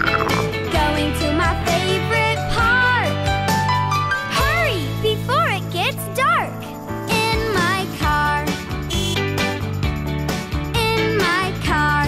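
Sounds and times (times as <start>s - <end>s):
bright backing music with bass: 0.0s - 4.8s, 6.9s - 12.0s.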